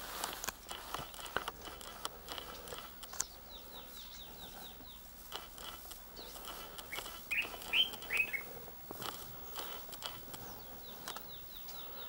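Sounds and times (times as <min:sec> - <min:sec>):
faint clicks: 0:00.2 - 0:11.8
high falling bird chirps: 0:00.9 - 0:12.0
short bird calls: 0:02.2 - 0:12.0.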